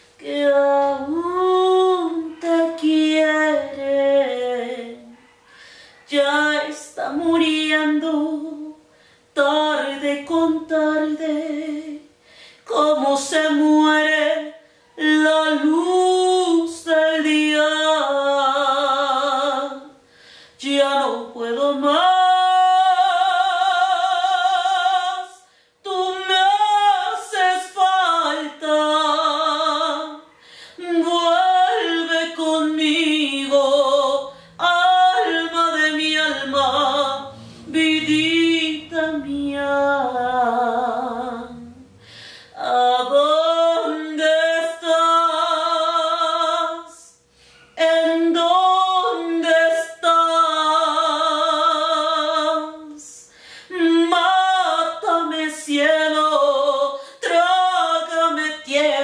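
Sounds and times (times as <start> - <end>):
woman singing unaccompanied: 0.0 - 59.0
singer breathing: 5.4 - 6.1, 8.8 - 9.4, 12.2 - 12.7, 20.0 - 20.6, 25.4 - 25.8, 30.3 - 30.8, 34.3 - 34.6, 37.2 - 38.2, 41.8 - 42.6, 47.3 - 47.8, 53.2 - 53.7.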